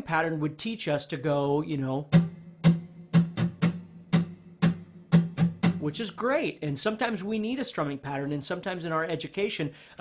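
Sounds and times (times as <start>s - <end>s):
muted acoustic guitar strums: 2.0s - 6.2s.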